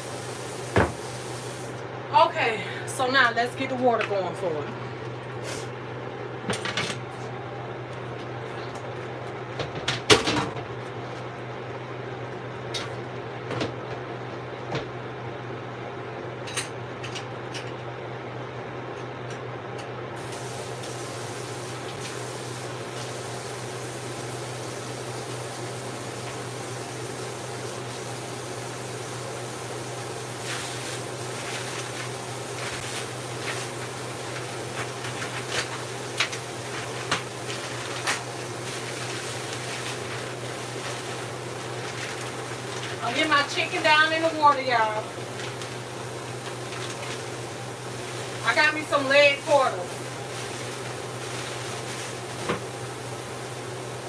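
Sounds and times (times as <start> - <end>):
steady low hum: 0.0 - 19.9.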